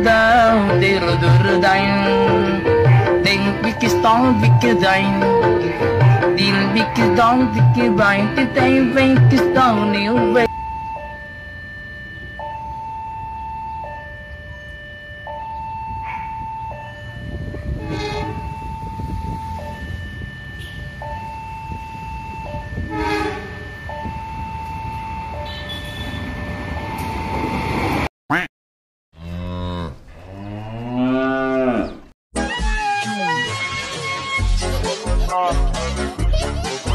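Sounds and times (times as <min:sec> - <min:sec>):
level crossing two-tone alarm: 0:00.4 - 0:27.8
cow mooing: 0:29.2 - 0:32.1.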